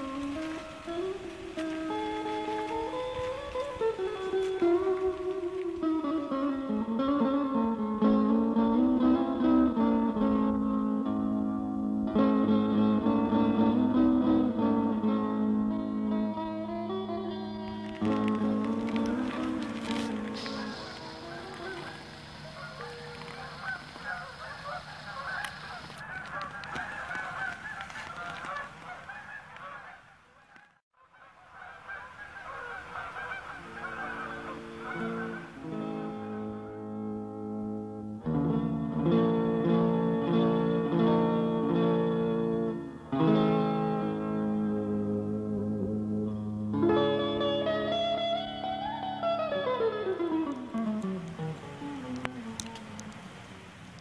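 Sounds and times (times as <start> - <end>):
geese honking: 0.0 - 7.2, 17.9 - 36.8, 46.3 - 54.0
instrumental music with held chords: 0.0 - 23.7, 34.1 - 53.3.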